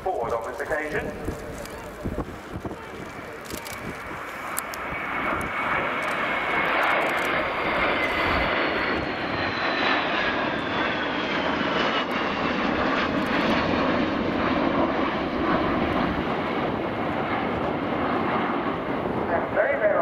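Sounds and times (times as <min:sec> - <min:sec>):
high jet engine whine: 0:00.0 - 0:20.0
jets flying past: 0:00.0 - 0:20.0.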